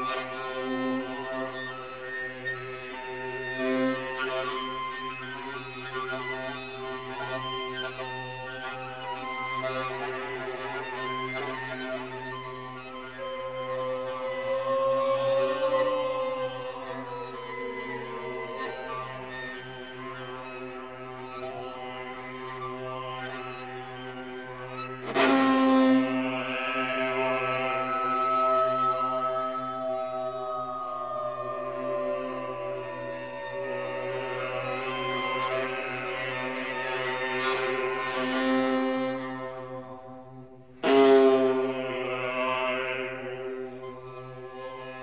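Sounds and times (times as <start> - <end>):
vocal ensemble holding chord: 25.1 - 40.2, 40.8 - 44.9.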